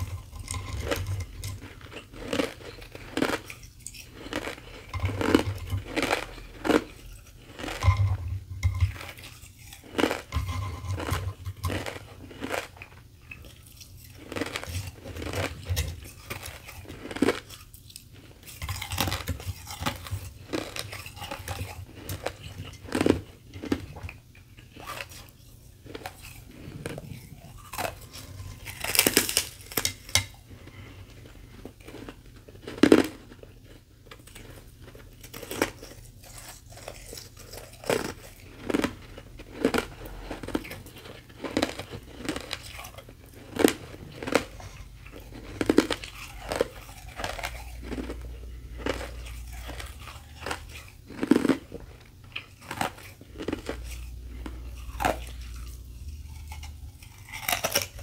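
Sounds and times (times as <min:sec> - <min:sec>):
ice crunching being chewed: 0:00.0 - 0:58.0.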